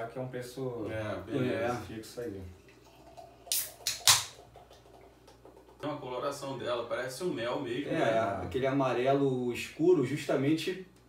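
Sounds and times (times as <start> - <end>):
beer pouring and fizzing: 2.5 - 5.8.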